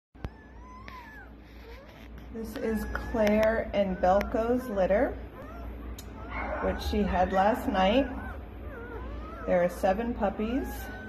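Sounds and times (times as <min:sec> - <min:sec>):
puppies squeaking: 0:00.2 - 0:11.0.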